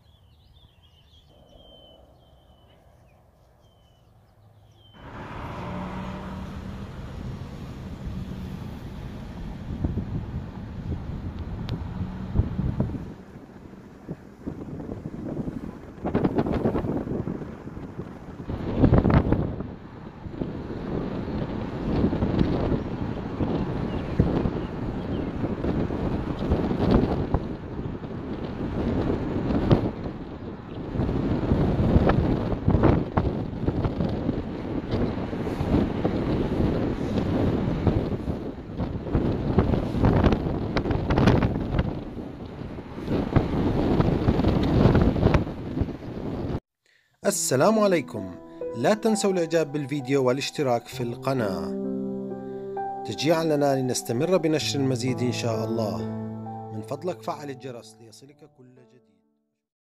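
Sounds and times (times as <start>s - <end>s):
wind buffeting microphone: 0.0s - 46.6s.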